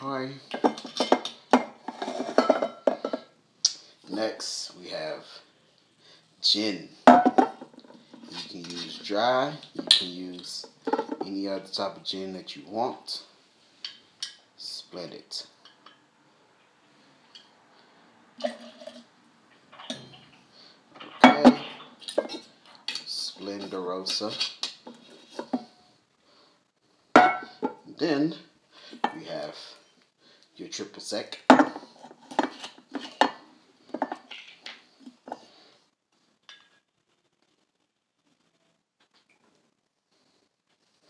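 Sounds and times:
glass bottle and jigger clinking: 21.1s - 22.4s
glass bottle clinks and knocks: 27.2s - 27.8s.

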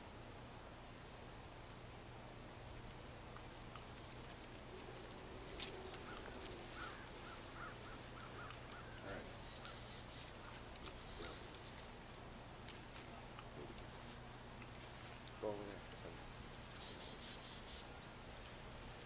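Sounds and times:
faint outdoor ambience: 0.0s - 19.0s.

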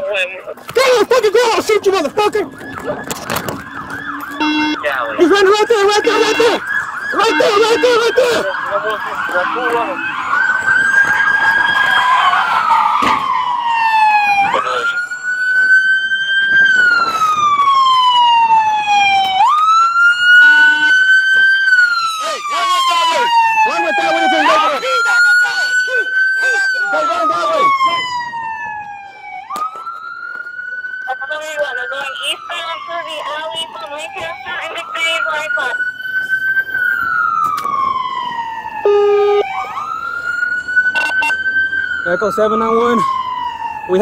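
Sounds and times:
police siren wailing: 0.0s - 44.0s.

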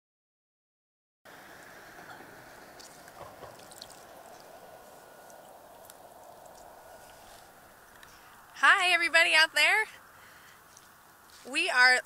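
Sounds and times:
water washing over rocks: 1.3s - 7.7s
small ticks and drips: 1.5s - 8.6s, 10.4s - 11.2s.

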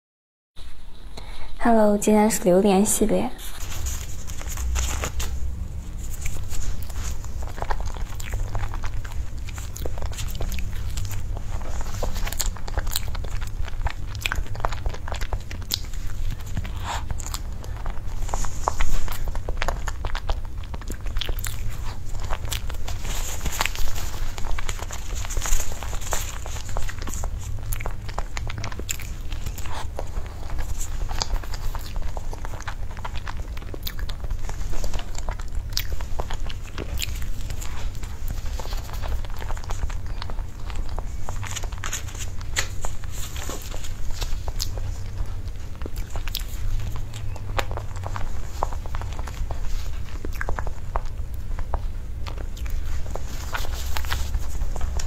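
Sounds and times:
person chewing with mouth clicks: 3.5s - 55.0s.

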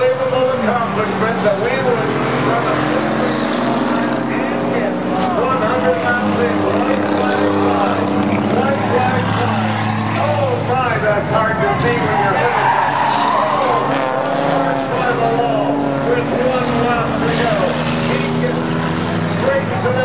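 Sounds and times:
race car engines droning: 0.0s - 20.0s.

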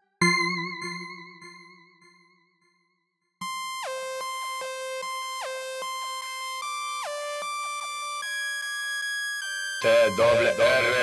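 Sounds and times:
synthesizer music: 9.8s - 11.0s.

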